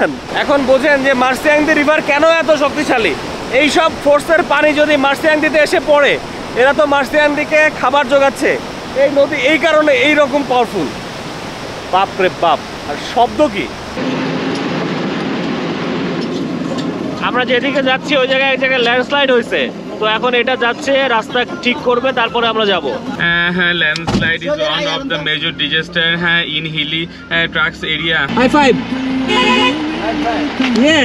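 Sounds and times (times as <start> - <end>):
short horn toot: 29.3 - 29.9.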